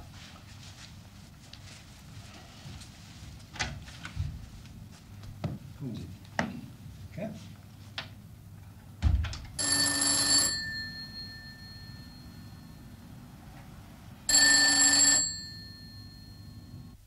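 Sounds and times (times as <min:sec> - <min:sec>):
telephone bell ringing: 0:09.6 - 0:13.0, 0:14.3 - 0:17.0.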